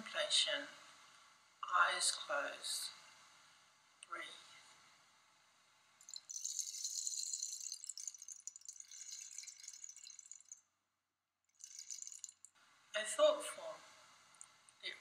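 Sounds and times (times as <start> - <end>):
percussion rattle ticks: 6.0 - 10.6, 11.5 - 12.6.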